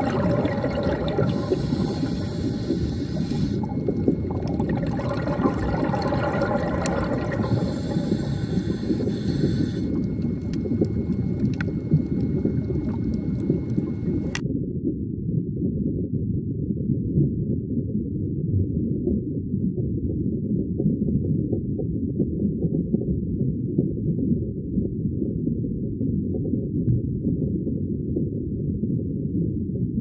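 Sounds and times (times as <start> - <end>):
underwater hissing: 0.0 - 14.4
underwater low rumble: 0.0 - 30.0.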